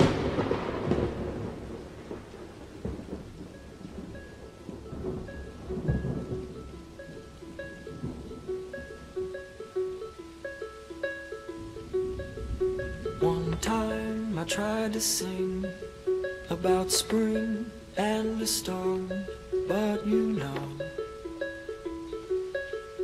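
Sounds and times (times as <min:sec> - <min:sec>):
thunderclap: 0:00.0 - 0:08.4
rolling thunder: 0:00.0 - 0:09.2
steady rain: 0:00.0 - 0:23.0
plucked pop song melody: 0:03.6 - 0:23.0.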